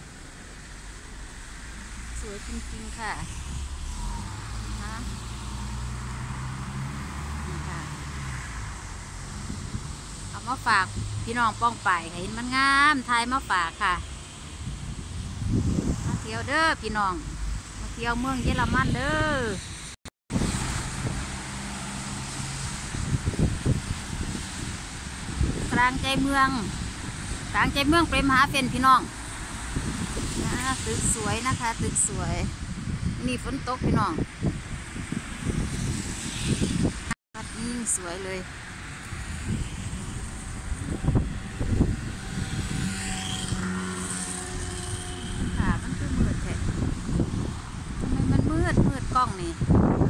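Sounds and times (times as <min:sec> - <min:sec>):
engine hum: 0:00.0 - 0:19.6, 0:20.3 - 0:31.6, 0:34.2 - 0:50.0
cars driving past: 0:00.0 - 0:33.0, 0:34.2 - 0:50.0
passing road vehicles rumble: 0:00.0 - 0:50.0
wind buffeting microphone: 0:01.8 - 0:13.1, 0:13.8 - 0:50.0.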